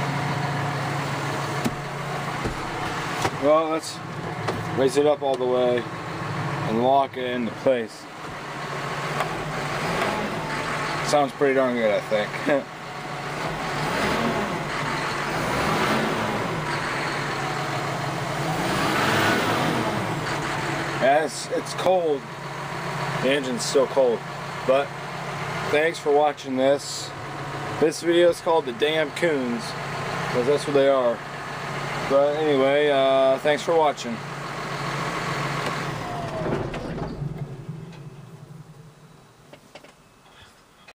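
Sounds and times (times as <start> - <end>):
tractor diesel engine running: 0.0 - 40.5.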